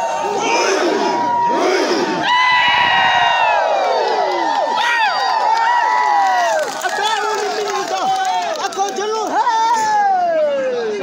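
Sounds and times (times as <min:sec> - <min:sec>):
crowd of men shouting: 0:00.0 - 0:07.0.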